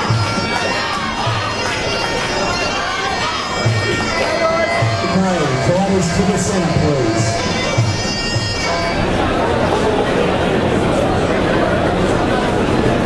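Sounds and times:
drum beats: 0:00.0 - 0:09.8
oboe nasal sliding melody: 0:00.0 - 0:10.7.

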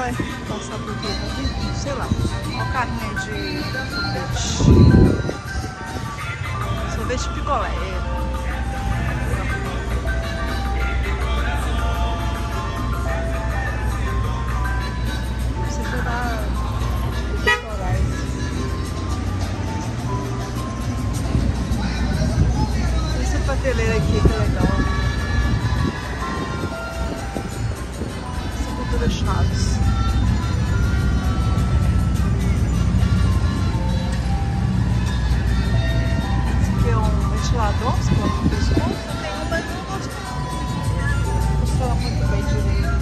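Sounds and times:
ice cream truck jingle: 0:00.0 - 0:43.0
low rumble of street traffic: 0:00.0 - 0:43.0.

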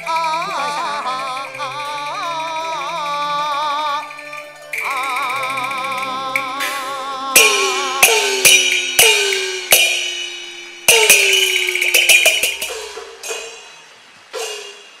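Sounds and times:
cymbal strikes: 0:04.1 - 0:15.0
gong strikes: 0:04.7 - 0:15.0.

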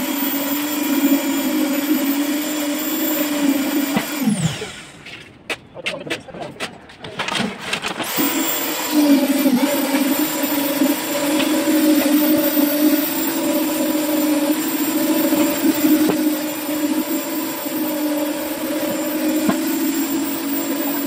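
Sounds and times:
concrete vibrator motor hum: 0:00.0 - 0:05.0, 0:08.0 - 0:21.0.

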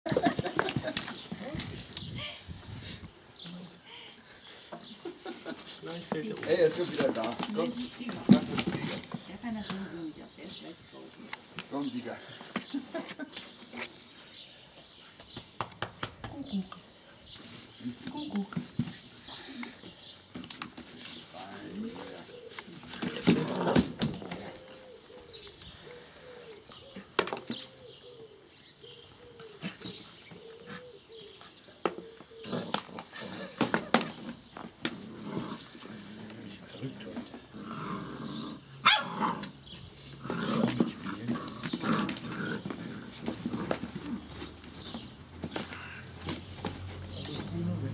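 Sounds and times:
dove cooing: 0:22.2 - 0:33.6.

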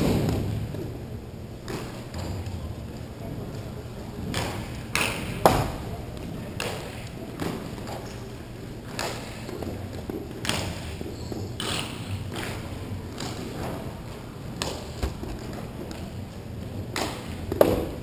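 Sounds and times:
balls striking boards and floor: 0:01.6 - 0:02.7, 0:04.2 - 0:08.2, 0:08.8 - 0:18.0
hockey sticks slapping balls: 0:01.6 - 0:18.0.

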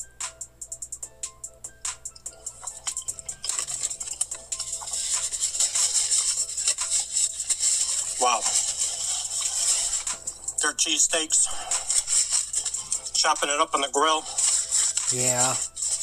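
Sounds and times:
background music with a beat: 0:00.0 - 0:16.0
paper wrapper crinkling: 0:03.4 - 0:10.5, 0:11.6 - 0:13.2, 0:14.2 - 0:16.0.

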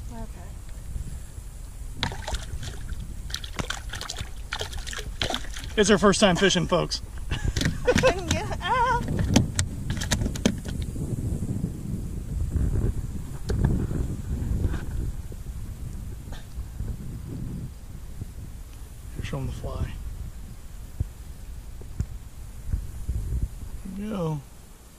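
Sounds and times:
fish flopping in a boat: 0:02.0 - 0:06.4, 0:07.3 - 0:10.9
thumps and rustling: 0:07.5 - 0:10.9.

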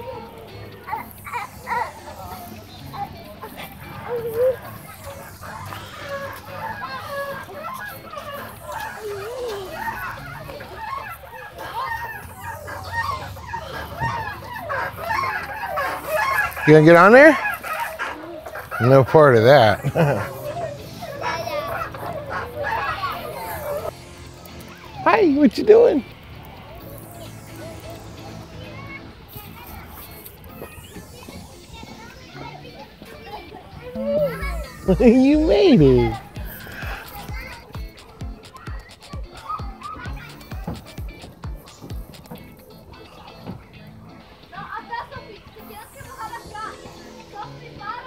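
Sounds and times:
low traffic hum: 0:00.0 - 0:38.6
children shouting and squealing: 0:00.0 - 0:48.0
scattered voices: 0:00.0 - 0:48.0.

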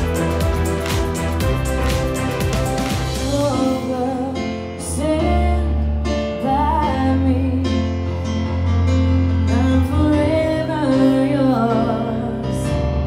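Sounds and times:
piano: 0:00.0 - 0:13.0
woman singing into a microphone: 0:03.3 - 0:08.1, 0:09.5 - 0:12.9.

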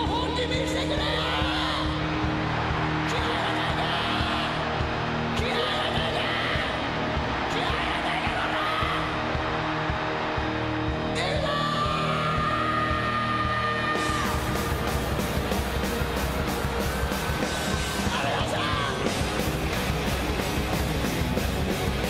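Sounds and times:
hard rock band playing: 0:00.0 - 0:22.0.

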